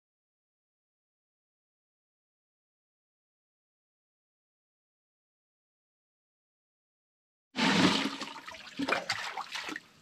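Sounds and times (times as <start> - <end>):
water pouring and splashing: 7.6 - 10.0.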